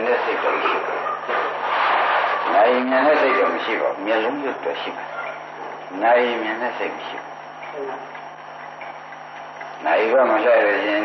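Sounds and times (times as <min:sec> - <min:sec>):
tape hiss: 0:00.0 - 0:11.0
man speaking: 0:02.5 - 0:05.1, 0:05.9 - 0:08.1, 0:09.8 - 0:11.0.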